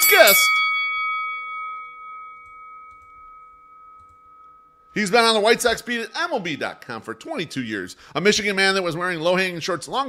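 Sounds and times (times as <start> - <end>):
bell-like chime: 0.0 - 6.9.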